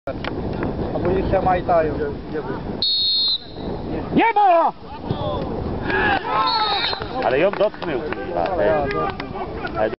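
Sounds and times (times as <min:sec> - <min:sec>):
referee's whistle blast: 0:02.8 - 0:03.8, 0:06.4 - 0:07.2.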